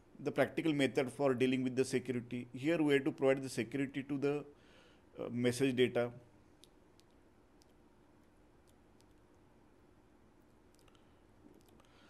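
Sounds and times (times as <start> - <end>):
man speaking: 0.2 - 4.5, 5.2 - 6.2
faint clicks: 10.4 - 12.0.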